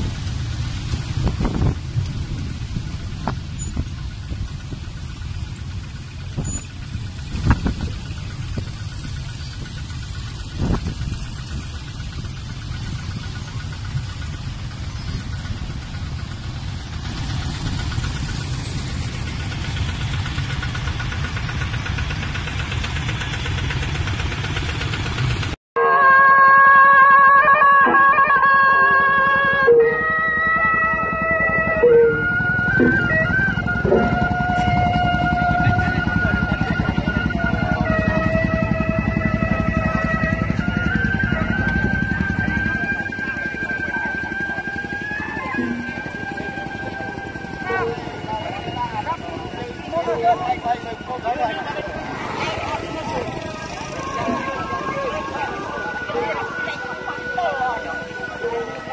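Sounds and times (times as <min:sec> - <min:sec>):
motorcycles and cars passing: 0:00.0 - 0:25.6, 0:26.8 - 0:58.9
music with long held notes: 0:25.8 - 0:52.0.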